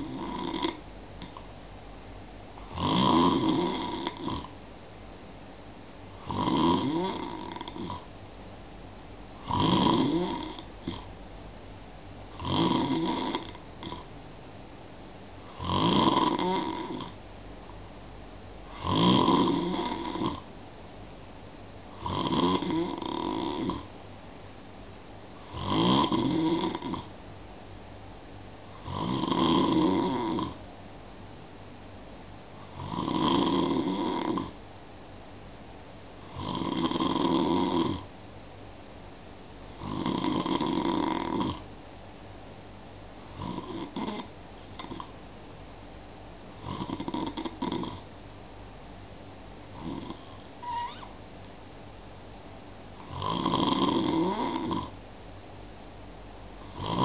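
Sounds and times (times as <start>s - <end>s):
person snoring: 0.0s - 1.5s, 2.6s - 4.5s, 6.2s - 8.1s, 9.4s - 11.1s, 12.3s - 14.1s, 15.4s - 17.2s, 18.6s - 20.5s, 21.9s - 23.9s, 25.4s - 27.1s, 28.7s - 30.6s, 32.6s - 34.6s, 36.2s - 38.1s, 39.7s - 41.7s, 43.2s - 45.1s, 46.6s - 48.0s, 49.7s - 51.1s, 53.0s - 55.0s, 56.6s - 57.0s
quiet breathing: 0.0s - 1.6s, 49.4s - 51.6s.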